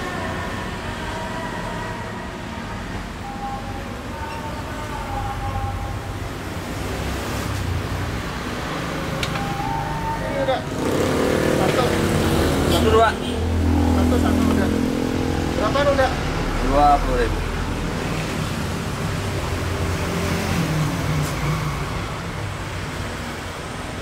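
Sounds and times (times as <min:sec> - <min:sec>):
voices: 0:00.0 - 0:06.5, 0:08.7 - 0:18.0
motorbikes and cars passing: 0:00.0 - 0:24.0.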